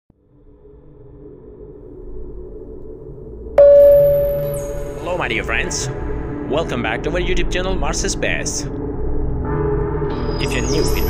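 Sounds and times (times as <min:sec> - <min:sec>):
loud bright ringing tone: 0:03.6 - 0:05.3
low drone: 0:03.6 - 0:06.5.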